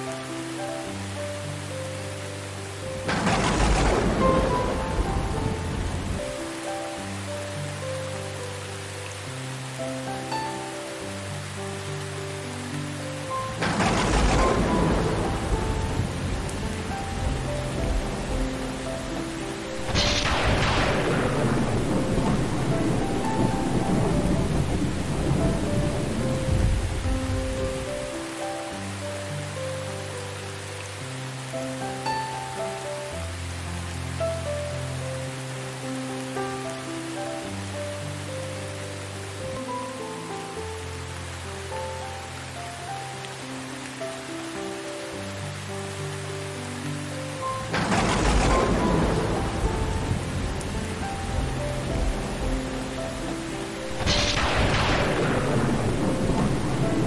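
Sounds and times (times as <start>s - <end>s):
steady rain: 0.0s - 57.0s
loud thunderclap: 3.0s - 6.3s, 13.6s - 16.8s, 19.8s - 27.9s, 47.7s - 52.4s, 53.9s - 57.0s
thunder rumble: 3.0s - 6.6s, 13.5s - 28.1s, 47.5s - 57.0s.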